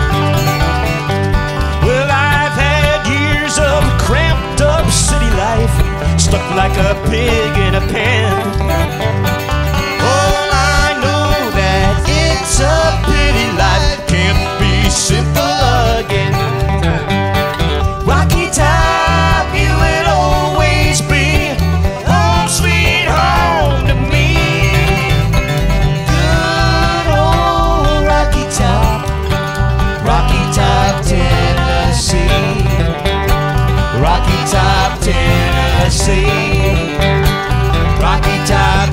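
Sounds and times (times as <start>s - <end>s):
acoustic guitars: 0.0s - 38.9s
banjo picking: 0.0s - 38.9s
bending lead line: 0.0s - 38.9s
upright bass beat: 0.0s - 38.9s.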